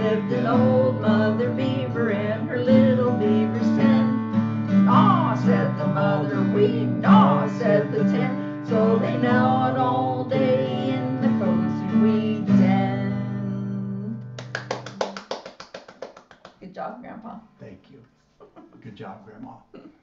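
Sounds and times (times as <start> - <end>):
voices singing children's song: 0.0 - 4.2, 4.8 - 13.4
acoustic guitar strumming: 0.0 - 14.4.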